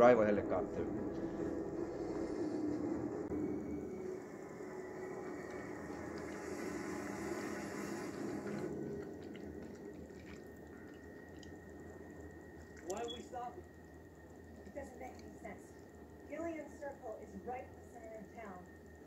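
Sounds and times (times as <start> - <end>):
rain: 4.0 - 15.6.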